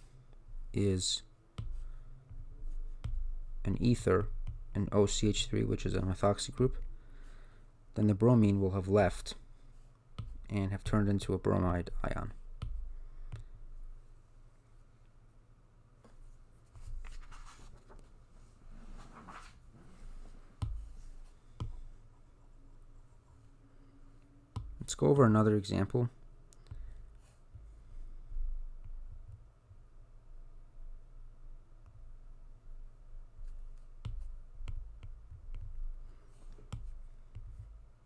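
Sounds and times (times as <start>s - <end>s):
low electrical hum: 0.0s - 38.0s
stylus tapping on pen tablet: 1.6s - 3.3s, 10.2s - 11.0s, 12.6s - 13.5s, 20.6s - 20.9s, 21.6s - 21.8s, 34.0s - 35.8s.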